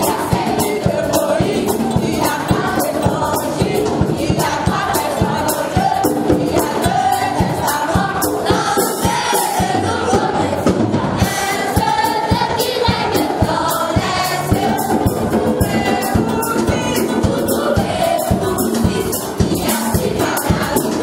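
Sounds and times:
group singing gospel song: 0:00.0 - 0:21.0
steady percussive beat: 0:00.0 - 0:21.0.

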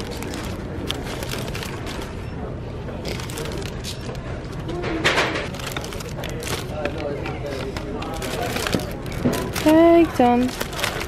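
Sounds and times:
plastic wrapper crinkling: 0:00.0 - 0:02.2, 0:03.0 - 0:04.2, 0:05.4 - 0:11.0.

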